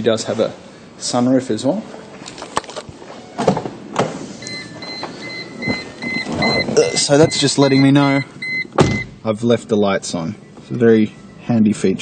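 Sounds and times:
car warning chime beeping: 0:04.4 - 0:09.2, 0:10.1 - 0:12.0.

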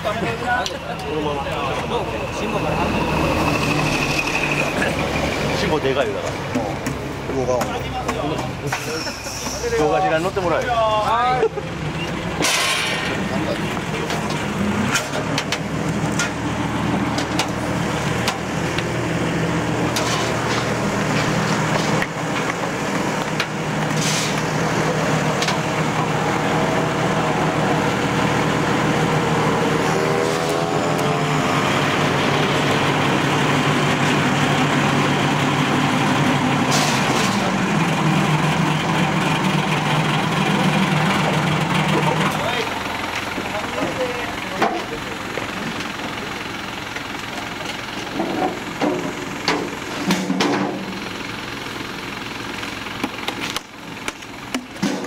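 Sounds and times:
crowd chatter: 0:00.0 - 0:16.1, 0:23.8 - 0:31.3, 0:38.8 - 0:48.8
truck engine running: 0:00.0 - 0:55.0.

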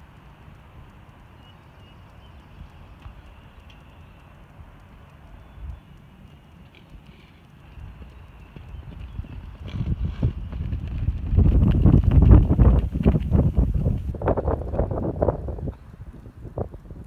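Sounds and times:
horses galloping on turf: 0:02.3 - 0:17.0.

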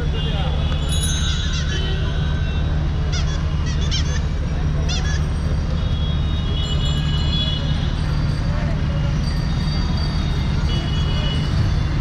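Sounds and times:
city street traffic rumble: 0:00.0 - 0:12.0
high wavering horn toots: 0:00.9 - 0:03.8.

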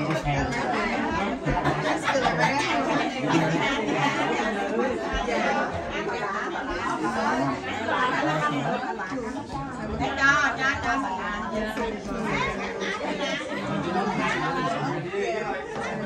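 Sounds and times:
overlapping conversational chatter: 0:00.0 - 0:16.0.

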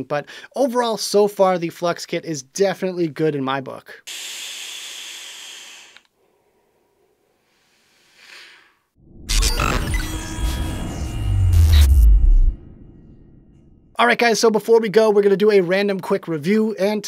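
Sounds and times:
faint breathy exhale of vapour: 0:04.1 - 0:08.9
music sting with deep bass: 0:09.0 - 0:13.4.

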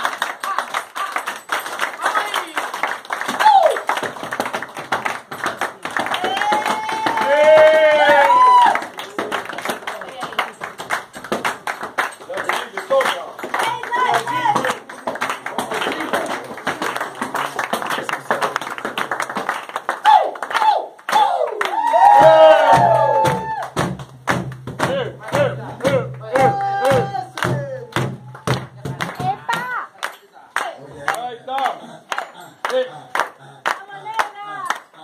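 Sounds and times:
group hand clapping: 0:00.0 - 0:35.0.

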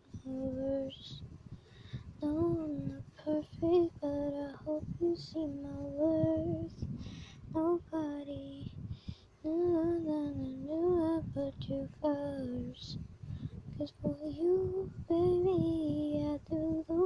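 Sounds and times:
high voice singing slow melody: 0:00.0 - 0:01.4.

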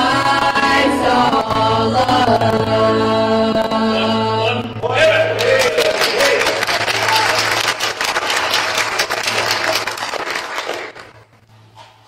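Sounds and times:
congregation clapping: 0:05.0 - 0:11.3.

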